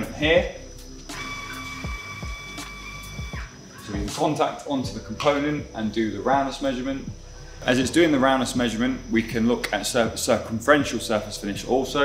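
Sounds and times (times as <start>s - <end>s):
background music with a beat: 0.7s - 7.9s
machine motor whining: 1.1s - 3.9s.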